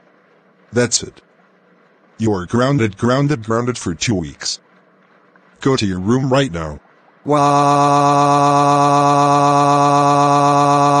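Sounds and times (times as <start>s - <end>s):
synthesized voice wailing: 6.6s - 11.0s.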